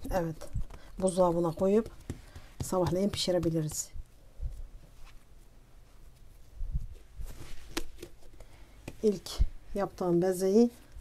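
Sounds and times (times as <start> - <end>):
hands shaping dough: 0.0 - 5.4.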